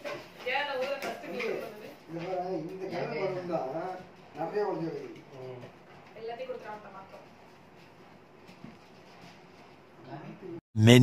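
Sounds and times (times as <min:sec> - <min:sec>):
person's voice low and muffled: 0:10.8 - 0:11.0.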